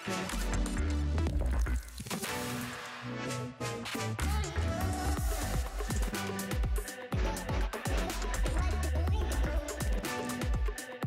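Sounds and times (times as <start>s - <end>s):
electronic music with heavy bass: 0.0s - 11.0s.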